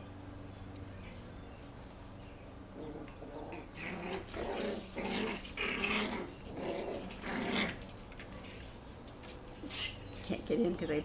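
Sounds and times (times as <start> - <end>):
puppies play-growling: 2.6 - 9.6.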